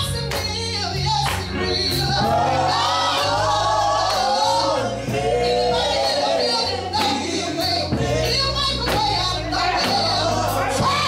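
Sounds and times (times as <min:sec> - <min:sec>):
electric band playing: 0:00.0 - 0:11.0
women singing in harmony: 0:00.0 - 0:11.0.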